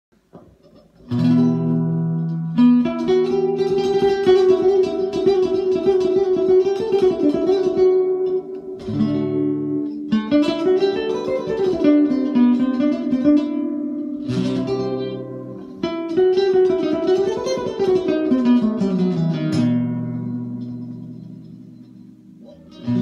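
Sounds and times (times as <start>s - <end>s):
classical guitar fingerpicked: 0.3s - 23.0s.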